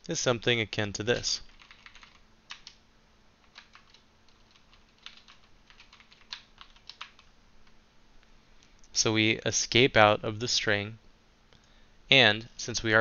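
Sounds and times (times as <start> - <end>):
computer keyboard typing: 1.5 - 2.8, 3.4 - 7.8.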